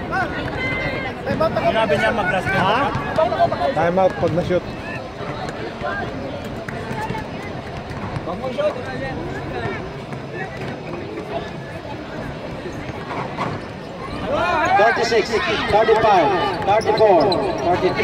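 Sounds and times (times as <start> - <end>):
spectators chattering: 0.0 - 18.0.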